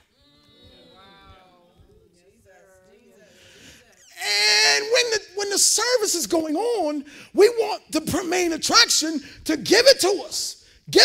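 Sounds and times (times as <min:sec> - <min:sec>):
congregation voices: 0:00.0 - 0:11.0.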